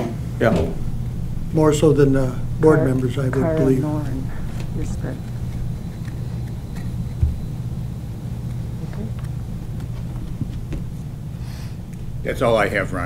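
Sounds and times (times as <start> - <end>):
low hum and rumble: 0.0 - 13.0.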